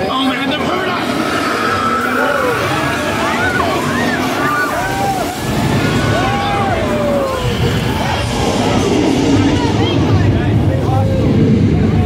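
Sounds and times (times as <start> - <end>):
dense rumbling soundtrack: 0.0 - 12.0
shrill sliding creature calls: 0.3 - 10.1.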